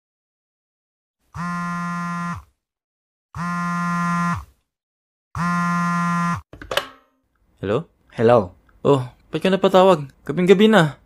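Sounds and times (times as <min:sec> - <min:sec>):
mobile phone buzzing: 0:01.4 - 0:02.5, 0:03.4 - 0:04.5, 0:05.4 - 0:06.5.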